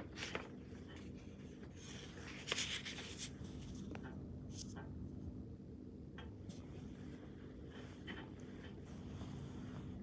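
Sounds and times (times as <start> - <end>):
faint steady hum: 0.0 - 10.0
hand rustling hair and clothing: 6.4 - 10.0.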